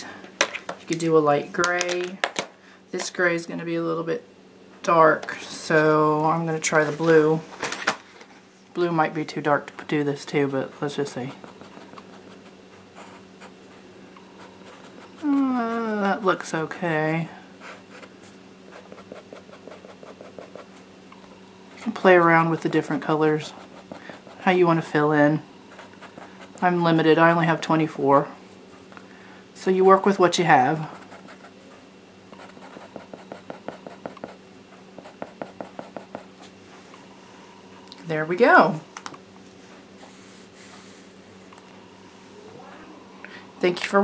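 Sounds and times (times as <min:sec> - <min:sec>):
felt-tip marker scratching on paper: 0:11.2 - 0:13.2, 0:18.7 - 0:20.7, 0:32.4 - 0:34.4
marker rubbing on paper: 0:32.4 - 0:34.4.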